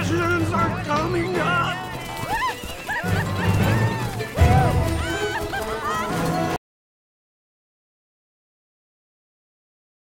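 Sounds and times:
film soundtrack music: 0.0s - 6.6s.

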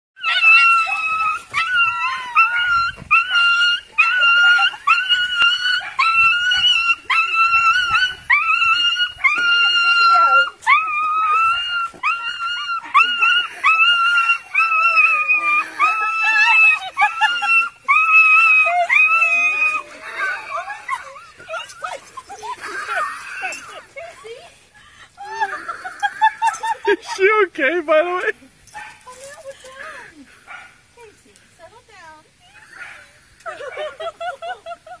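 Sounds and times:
dog whining and howling: 0.2s - 21.7s.

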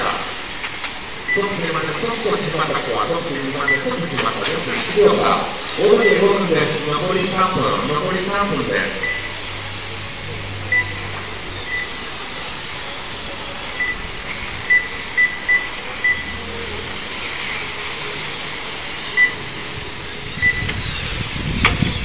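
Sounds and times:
electric motors whining: 0.0s - 22.0s
steady hiss: 0.0s - 22.0s
short high beeps: 1.3s - 9.3s.

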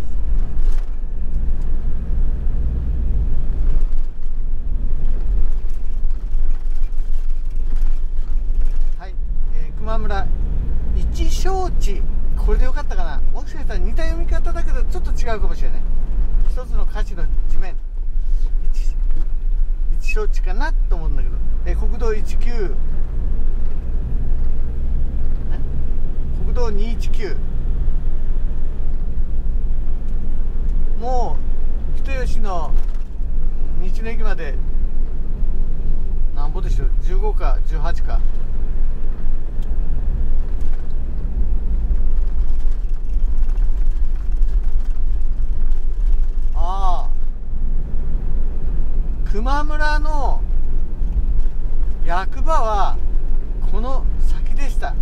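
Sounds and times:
vehicle engine and tyre rumble: 0.0s - 55.0s.

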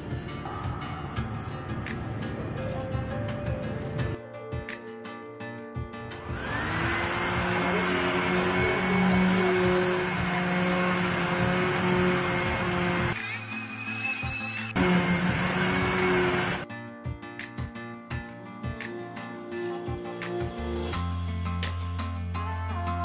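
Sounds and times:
electric sander whining: 6.2s - 13.2s, 14.8s - 16.6s.

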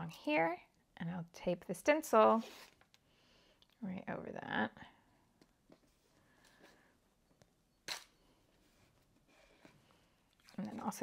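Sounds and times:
tape handling sounds: 7.3s - 10.9s.

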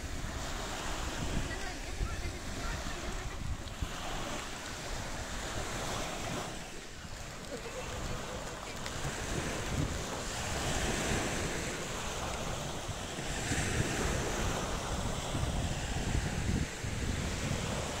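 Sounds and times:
waves washing up pebble beach: 0.0s - 18.0s
wind buffeting microphone: 0.0s - 18.0s.

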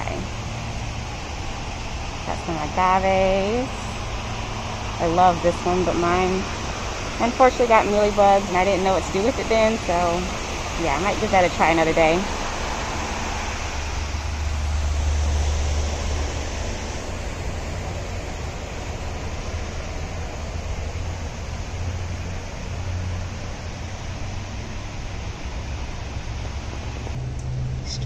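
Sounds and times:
rushing background noise: 0.0s - 28.0s.

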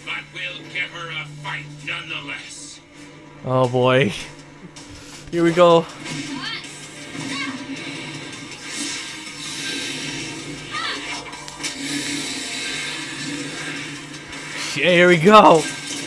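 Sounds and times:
dramatic battle music: 0.0s - 16.0s.

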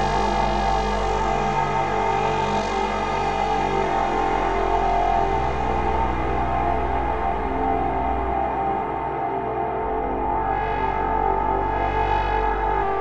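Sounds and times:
dark ambient synth drone: 0.0s - 13.0s.

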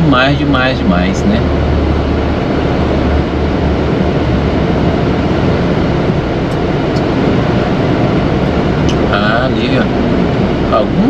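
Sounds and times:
road noise: 0.0s - 11.0s
truck diesel engine drone: 0.0s - 11.0s.

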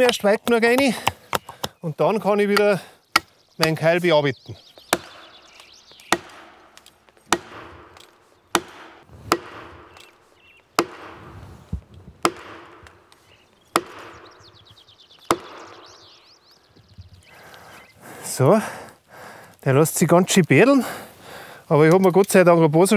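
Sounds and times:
axe striking plastic wedges: 4.8s - 10.2s, 10.8s - 11.2s, 12.2s - 13.0s, 13.7s - 14.3s, 15.2s - 15.8s.

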